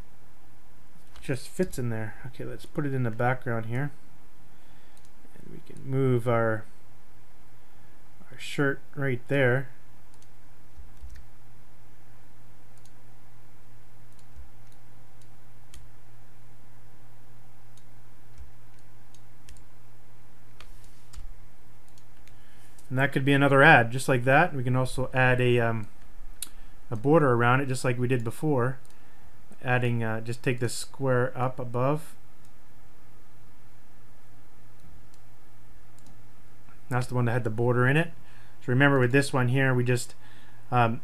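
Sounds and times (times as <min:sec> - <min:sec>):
low electrical hum: 0:00.0 - 0:41.0
man speaking: 0:01.2 - 0:04.0, 0:05.4 - 0:06.7, 0:08.2 - 0:09.8, 0:22.9 - 0:25.9, 0:26.9 - 0:28.8, 0:29.6 - 0:32.2, 0:36.8 - 0:41.0
computer mouse clicks: 0:04.9 - 0:05.9, 0:10.1 - 0:11.3, 0:12.7 - 0:13.0, 0:14.1 - 0:15.9, 0:17.7 - 0:19.7, 0:20.5 - 0:22.9, 0:28.8 - 0:29.0, 0:35.9 - 0:36.2.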